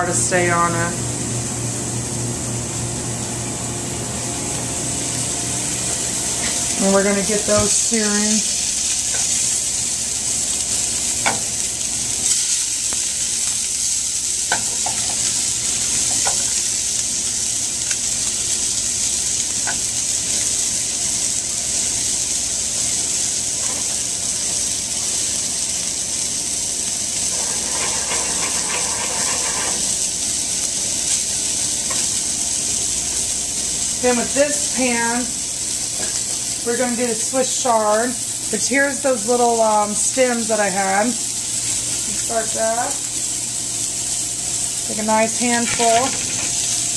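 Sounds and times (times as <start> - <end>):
seafood sizzling in hot oil: 0.0 - 46.9.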